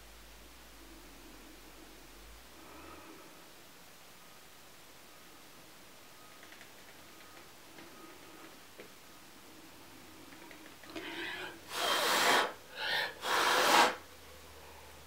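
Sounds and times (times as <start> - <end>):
person blowing hard: 11.1 - 14.1.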